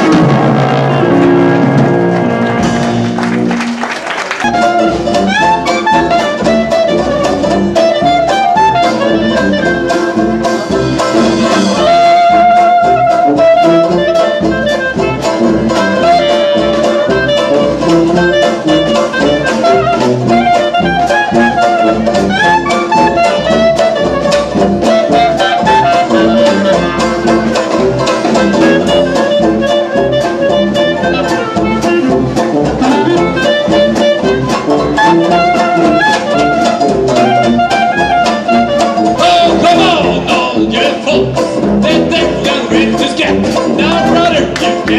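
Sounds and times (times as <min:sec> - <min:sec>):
clarinet melody: 0:00.0 - 0:44.9
jazz band playing live: 0:00.0 - 0:44.9.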